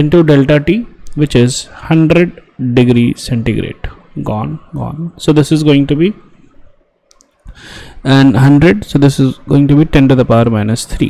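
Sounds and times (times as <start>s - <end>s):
man speaking: 0.0s - 6.4s, 8.0s - 11.0s
faint clicks: 7.1s - 7.6s
man breathing in: 7.5s - 8.0s.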